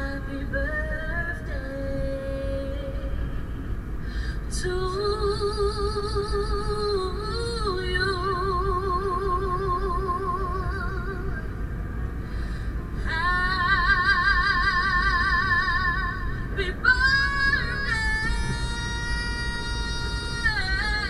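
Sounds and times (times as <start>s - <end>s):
car road noise rumble: 0.0s - 21.0s.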